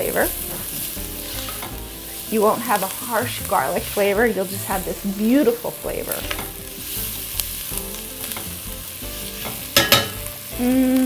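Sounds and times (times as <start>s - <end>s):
onions and garlic sizzling in a pot: 0.0s - 11.0s.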